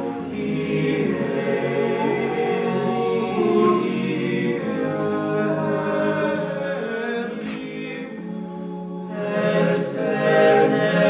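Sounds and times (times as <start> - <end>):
men's chorus singing a cappella: 0.0 - 11.0.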